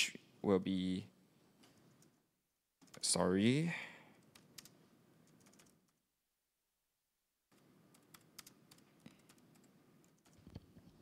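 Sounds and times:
faint keyboard typing: 1.6 - 3.2, 4.1 - 6.1, 7.5 - 11.0.

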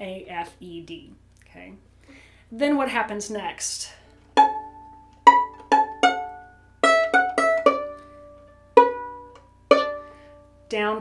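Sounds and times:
violin plucked pizzicato: 4.2 - 10.7.

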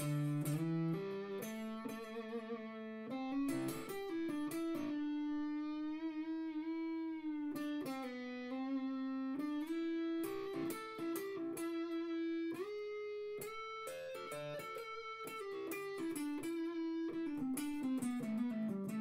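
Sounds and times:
electric guitar melody: 0.0 - 19.0.

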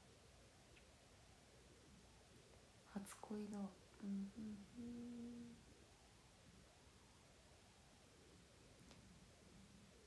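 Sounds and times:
woman humming: 4.0 - 5.6.

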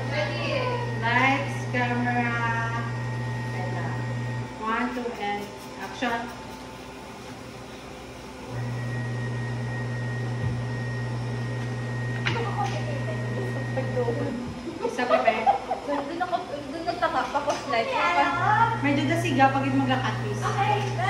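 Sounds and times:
voices talking: 0.0 - 6.4, 12.2 - 21.0
machine humming with high whine: 0.0 - 21.0.

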